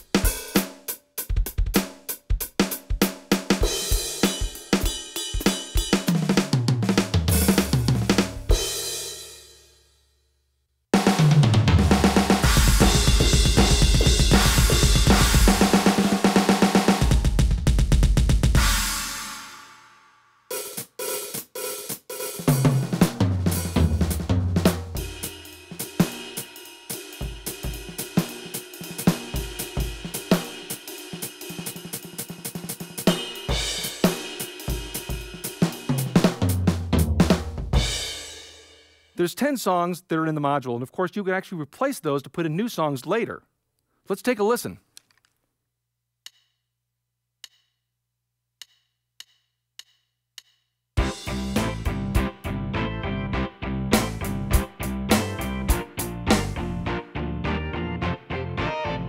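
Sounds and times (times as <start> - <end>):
electronic drum kit beat: 0.0 - 9.2, 11.0 - 19.5, 20.5 - 38.4, 51.0 - 57.0
kick drum and cymbals groove: 0.0 - 9.6, 11.0 - 19.5, 20.5 - 39.2, 48.6 - 52.6, 53.9 - 56.9
snare and kick hits: 54.0 - 54.3.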